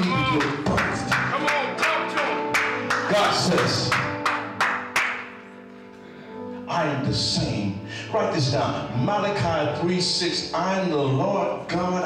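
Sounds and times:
rhythmic hand clapping: 0.0 - 5.5
keyboard sustained chords: 0.0 - 12.0.

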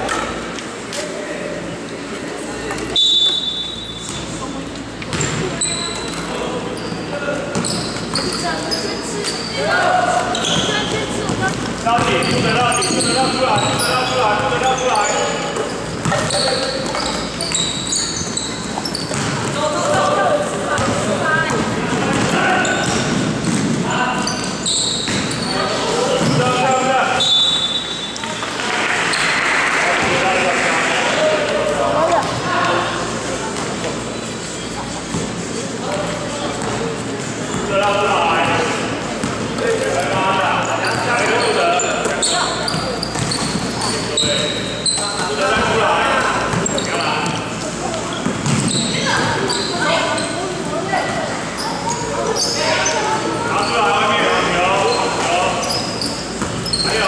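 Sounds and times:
short high squeaks: 5.6 - 9.6, 10.2 - 11.0, 12.2 - 19.2, 24.2 - 26.0, 26.7 - 29.5, 40.6 - 45.4, 48.6 - 50.4, 54.8 - 57.0.

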